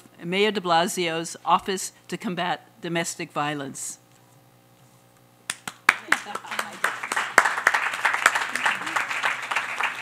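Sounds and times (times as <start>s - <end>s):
audience applauding: 5.5s - 10.0s.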